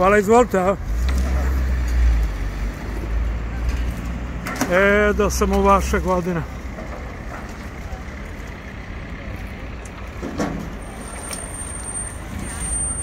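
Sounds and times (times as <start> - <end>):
street noise: 0.0 - 13.0
vehicle engine rumbling: 0.0 - 13.0.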